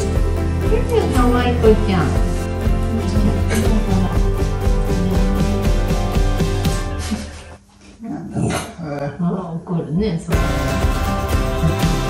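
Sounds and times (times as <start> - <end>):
dog growling: 8.2 - 8.9, 11.5 - 12.0.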